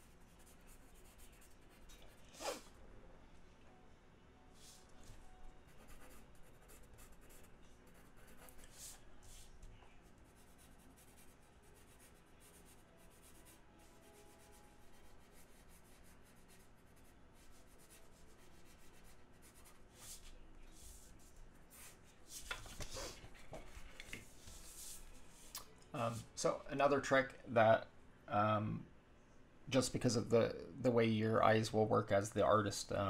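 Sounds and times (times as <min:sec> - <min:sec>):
pencil scratching on board: 0:05.7 - 0:09.4, 0:10.2 - 0:20.3.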